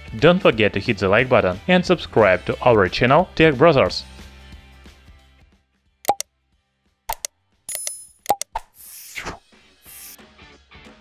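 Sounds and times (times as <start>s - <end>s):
short pops and clicks: 7.1s - 8.8s.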